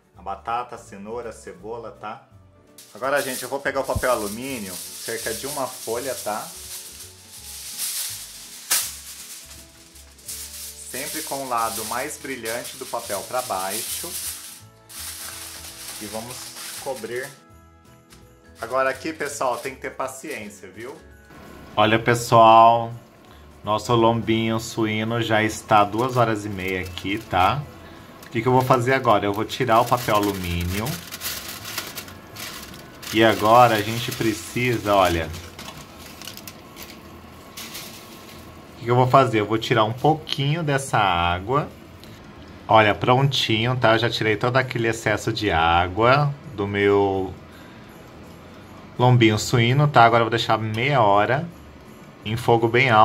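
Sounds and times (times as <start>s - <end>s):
quiet background music: 0.0s - 53.0s
aluminium foil crinkling: 2.8s - 17.4s, 18.6s - 21.0s, 25.0s - 38.7s.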